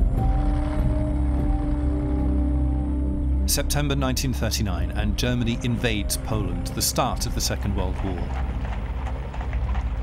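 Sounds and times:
tank engine and tracks rumbling: 0:00.0 - 0:10.0.

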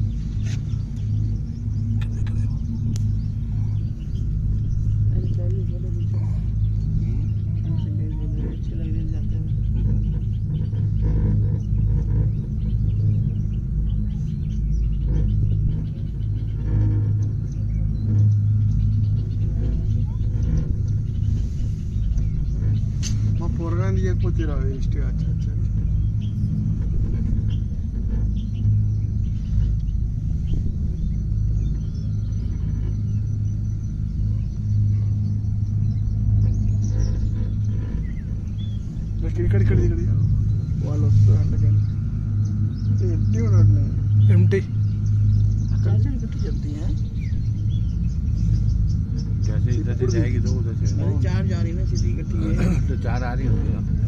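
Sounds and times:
cable car cabin rumble: 0:00.0 - 0:54.0.

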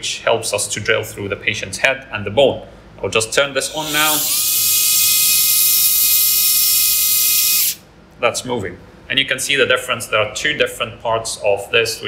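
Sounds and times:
drill high-pitched whine: 0:03.6 - 0:07.8.

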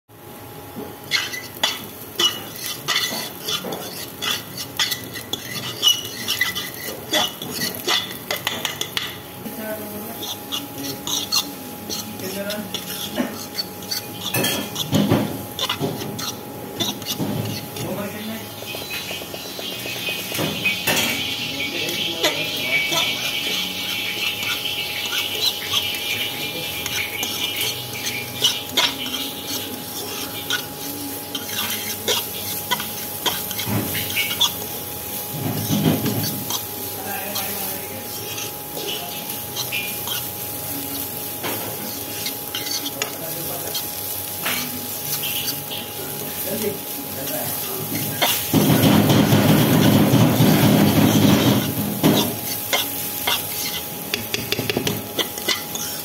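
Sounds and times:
vegetables sizzling in oil: 0:00.1 - 0:56.0
metal spatula scraping pan: 0:01.0 - 0:56.0.

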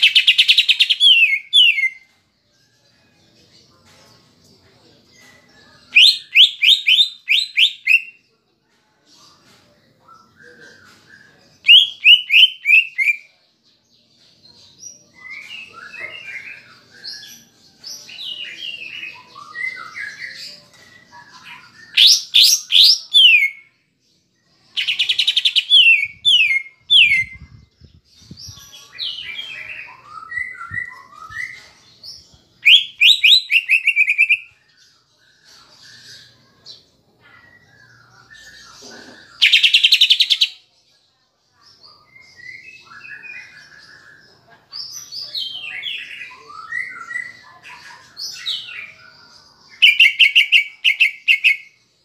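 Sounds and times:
bird singing varied phrases: 0:00.0 - 0:02.1, 0:05.8 - 0:08.2, 0:11.5 - 0:13.3, 0:21.0 - 0:23.7, 0:24.7 - 0:27.7, 0:32.6 - 0:34.8, 0:39.3 - 0:40.6, 0:48.3 - 0:51.9.

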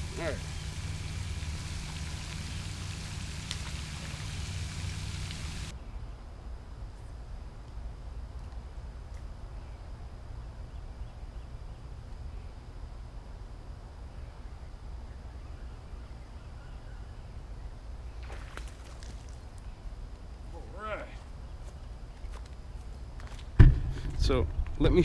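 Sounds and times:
fish splashing: 0:00.0 - 0:05.7.

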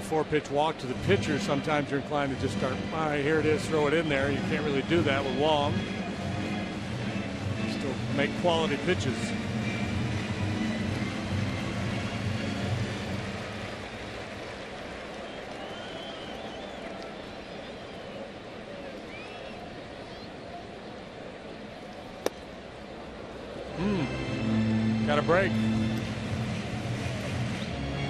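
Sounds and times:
crowd murmur: 0:00.0 - 0:28.0
baseball smacking into mitt: 0:22.2 - 0:22.5.

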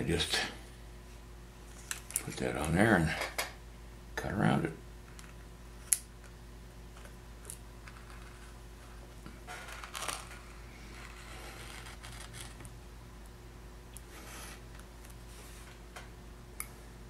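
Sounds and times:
steady low hum: 0:00.0 - 0:17.0
blade scraping: 0:10.8 - 0:12.6
small blade scratching wax: 0:10.9 - 0:12.6.

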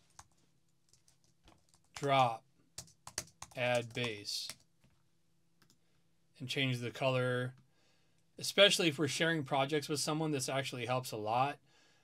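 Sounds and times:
computer keyboard keystrokes: 0:02.8 - 0:04.6.

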